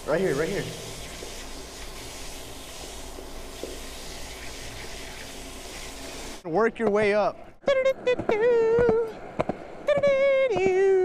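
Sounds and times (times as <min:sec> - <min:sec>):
drinking fountain water hissing: 0:00.0 - 0:06.4.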